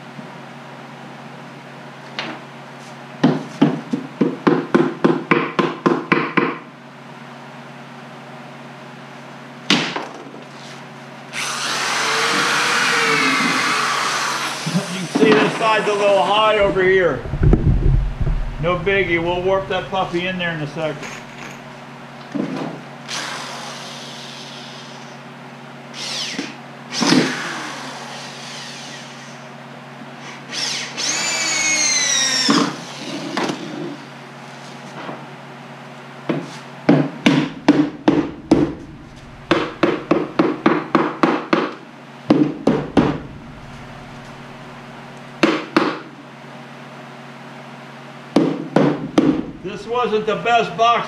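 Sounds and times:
scraping sounds: 16.6s - 21.3s, 38.3s - 40.1s, 42.9s - 44.8s
hammer knocking on wood: 36.3s - 41.7s, 42.3s - 43.4s, 48.4s - 49.5s.

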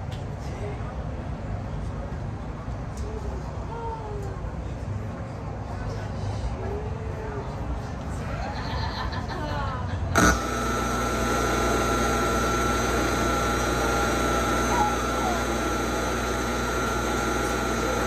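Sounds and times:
electrical hum: 10.0s - 18.0s
thin high whine: 10.2s - 18.0s.

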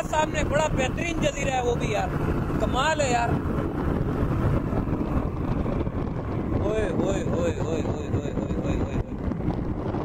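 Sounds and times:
engine and propeller running: 0.0s - 10.0s
wind noise on microphone: 0.0s - 10.0s.

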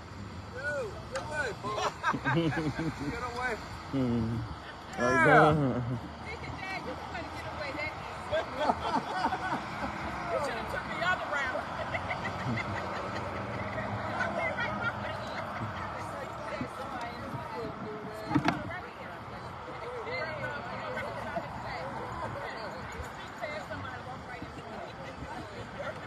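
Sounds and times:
people chattering and laughing: 0.0s - 26.0s
traffic hum: 0.0s - 26.0s.

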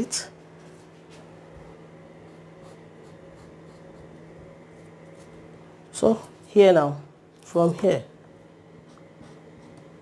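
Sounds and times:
low background hum: 0.0s - 10.0s
marker on paper: 2.3s - 4.2s, 8.8s - 9.8s.

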